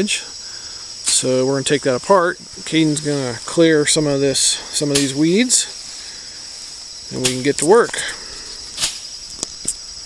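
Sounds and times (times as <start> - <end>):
insects droning: 0.0 - 10.0
stick swishing through weeds: 4.8 - 8.0, 8.6 - 9.1.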